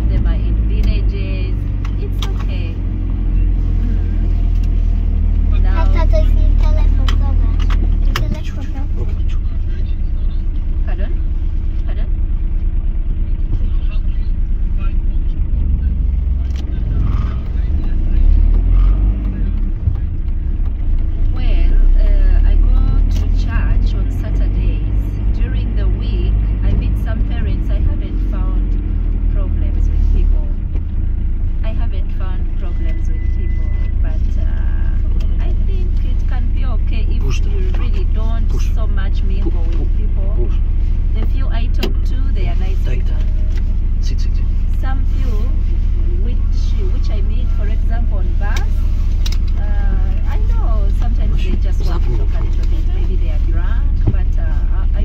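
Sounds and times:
constant hum: 0:00.0 - 0:55.0
engine and road rumble: 0:00.0 - 0:55.0.

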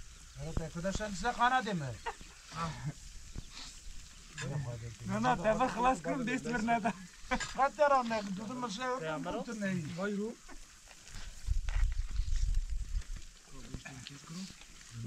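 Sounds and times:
food sizzling on fire: 0:00.0 - 0:15.0
men's voices: 0:00.4 - 0:03.6, 0:04.2 - 0:10.6.

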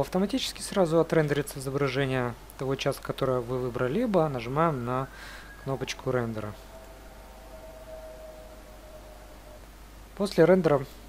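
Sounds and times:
low steady hum: 0:00.0 - 0:11.0
thin steady tone: 0:03.2 - 0:10.2.

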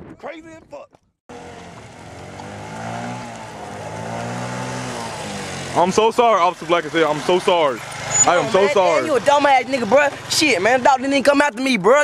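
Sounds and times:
motor scooter engine running: 0:01.3 - 0:11.7.

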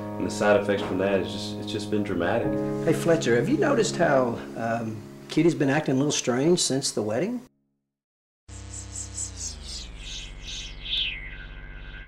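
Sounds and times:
low synthesizer hum: 0:08.5 - 0:12.0
pulsing high tones sliding down: 0:08.5 - 0:12.0.

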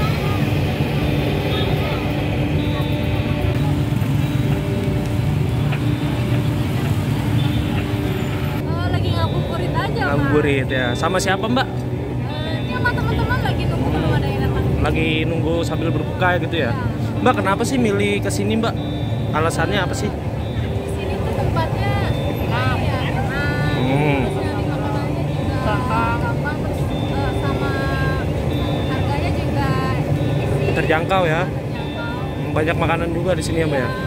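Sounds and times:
people's voices: 0:00.0 - 0:34.0
road traffic rumble: 0:00.0 - 0:34.0.

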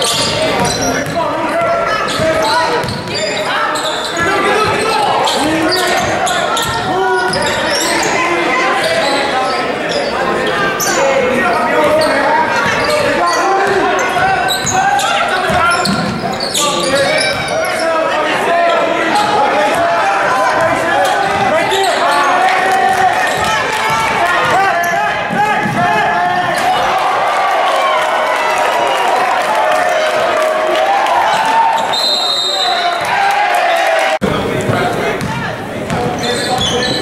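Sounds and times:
voices calling out: 0:00.0 - 0:37.0.

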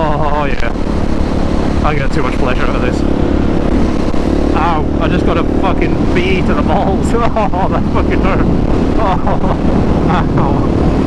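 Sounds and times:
rider's voice: 0:00.0 - 0:00.8, 0:01.8 - 0:03.1, 0:04.5 - 0:11.0
motorcycle engine running: 0:00.0 - 0:11.0.

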